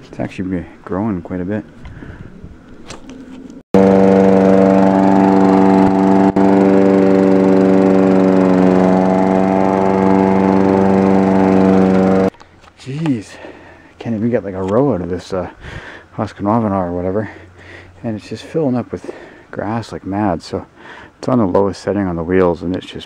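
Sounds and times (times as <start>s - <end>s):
lawn mower engine running: 3.8s - 12.3s.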